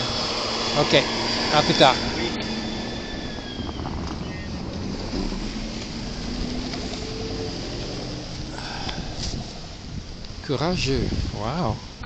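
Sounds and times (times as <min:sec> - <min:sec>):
cars passing on slushy road: 0:00.0 - 0:10.8.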